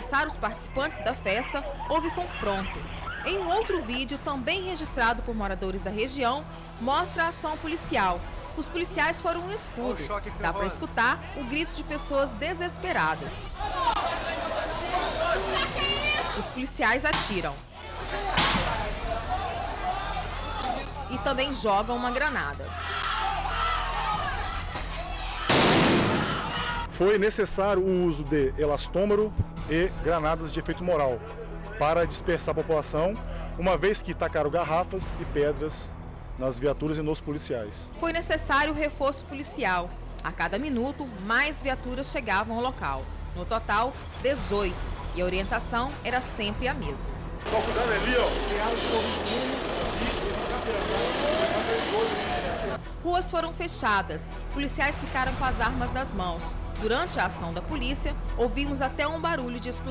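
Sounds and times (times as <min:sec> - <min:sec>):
voices talking and calling: 0:00.0 - 0:04.3
faint crowd voices: 0:06.6 - 0:26.9, 0:47.4 - 0:52.8
stun grenade blast: 0:25.5 - 0:26.4
vehicle engine running: 0:47.4 - 0:52.8.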